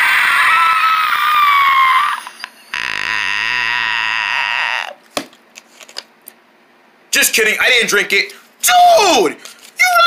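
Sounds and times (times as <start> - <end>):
person croaking: 2.7 - 5.0.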